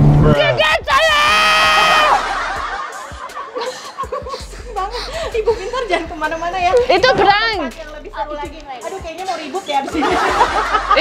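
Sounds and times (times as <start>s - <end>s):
loud high cry: 0.4s - 2.5s
woman laughing in snickers: 2.0s - 6.1s.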